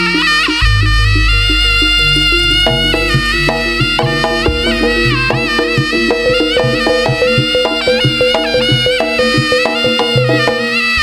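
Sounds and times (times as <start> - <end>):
nasal reed wind melody: 0.6 - 11.0
hand drum strokes: 1.2 - 11.0.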